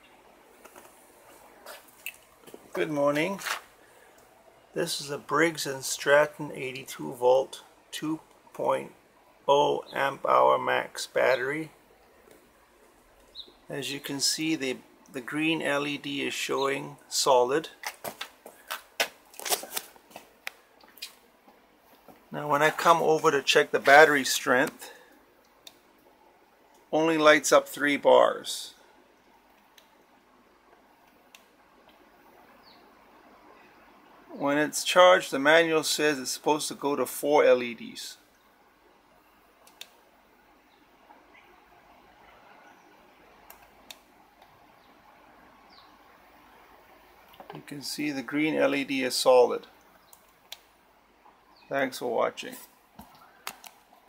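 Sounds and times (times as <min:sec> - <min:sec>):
phone handling clicks and rustles: 0:53.0 - 0:53.8.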